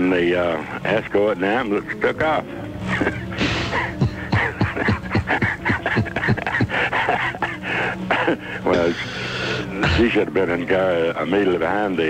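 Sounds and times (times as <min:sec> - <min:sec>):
man laughing hard: 0:02.8 - 0:09.2.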